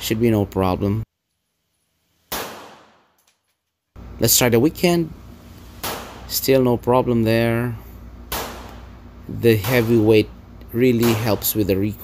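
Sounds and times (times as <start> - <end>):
pistol shot with echo: 2.3 - 3.1, 5.8 - 6.3, 8.3 - 8.9, 11.0 - 11.4.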